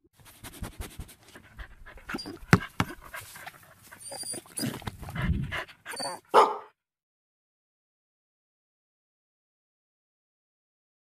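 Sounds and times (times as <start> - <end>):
dog panting and snuffling: 0.2 - 6.6
dog barking: 6.0 - 6.8.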